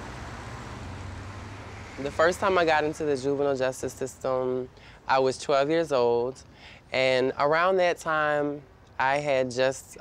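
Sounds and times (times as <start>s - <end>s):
distant city traffic hum: 0.0s - 10.0s.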